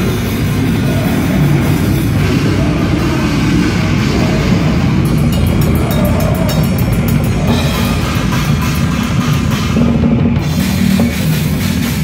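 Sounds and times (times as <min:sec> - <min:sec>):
cymbals: 0:00.0 - 0:12.0
grind band playing live: 0:00.0 - 0:12.0.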